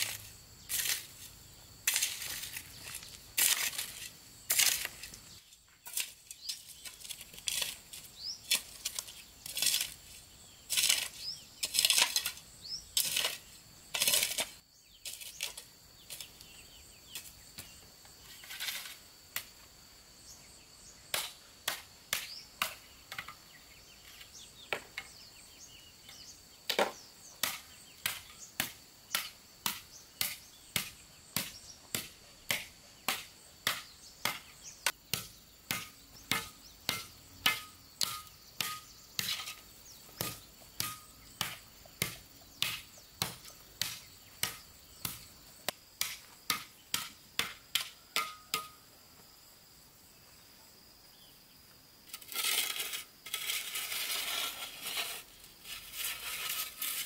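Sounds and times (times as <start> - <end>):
hoe chopping into dry earth: 0.0 - 16.3, 26.1 - 45.3
shovel scraping loose soil: 0.0 - 17.3, 37.0 - 44.1, 52.1 - 57.0
high insect whine: 0.0 - 57.0.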